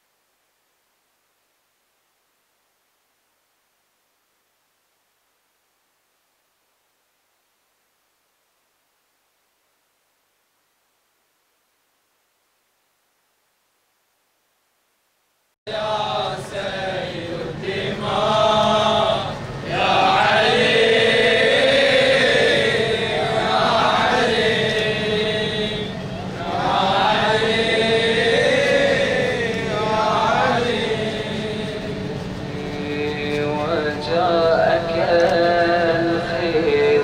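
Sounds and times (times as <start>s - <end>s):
person chanting a lament: 15.7s - 37.0s.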